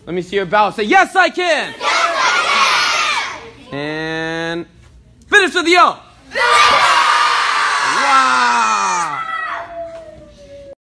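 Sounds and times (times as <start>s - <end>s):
children shouting together: 1.7s - 3.5s.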